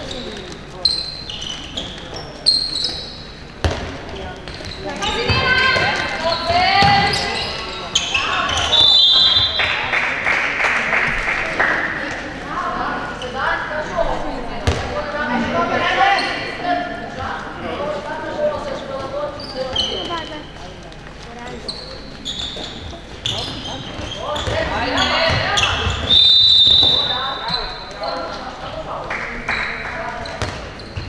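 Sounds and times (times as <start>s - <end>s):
shoes squeaking: 0.0s - 9.6s, 18.8s - 28.7s, 29.6s - 31.0s
ball bouncing on wooden floor: 3.6s - 7.3s, 14.6s - 14.9s, 24.0s - 26.1s.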